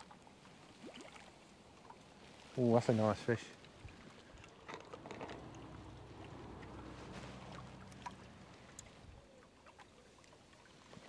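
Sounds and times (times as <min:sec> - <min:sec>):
distant motor boat engine drone: 0:04.7 - 0:09.6.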